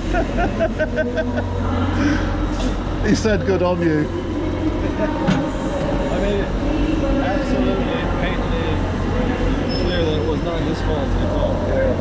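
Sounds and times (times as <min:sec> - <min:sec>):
electric train humming: 0:00.0 - 0:12.0.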